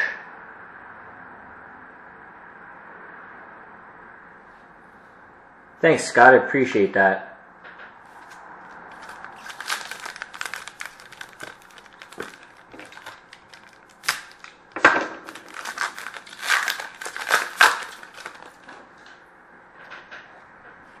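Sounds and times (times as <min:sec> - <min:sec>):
cards crackling when handled: 0:08.2 - 0:14.6, 0:15.3 - 0:18.7
wrappers tearing and crinkling: 0:08.2 - 0:14.6, 0:15.2 - 0:18.8.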